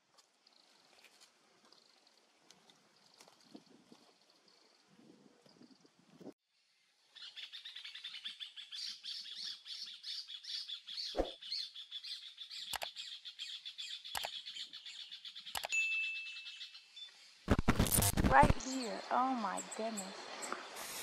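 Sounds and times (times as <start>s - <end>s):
birds chirping rapidly: 7.2s - 17.4s
mouse clicks: 12.7s - 13.0s, 14.2s - 14.4s, 15.5s - 15.7s
short ringing ding: 15.8s - 16.4s.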